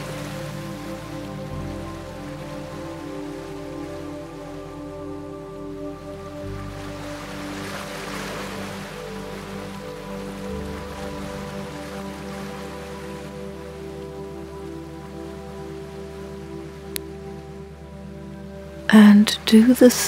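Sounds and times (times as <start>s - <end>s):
slow ambient music: 0.0s - 20.0s
soft water noise: 0.0s - 20.0s.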